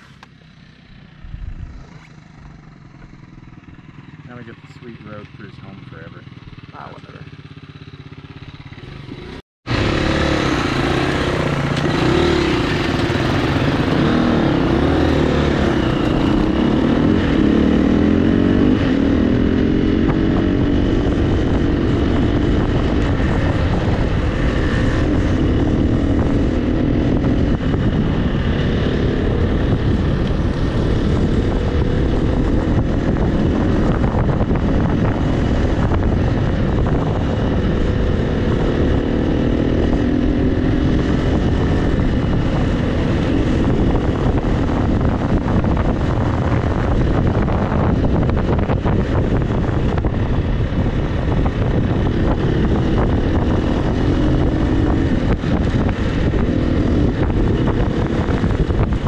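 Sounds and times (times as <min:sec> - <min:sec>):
dirt bike engine running: 0:00.0 - 0:59.0.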